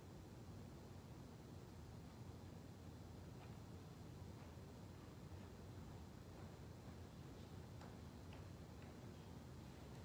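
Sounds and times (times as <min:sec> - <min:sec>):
faint ticks: 0:07.7 - 0:10.0.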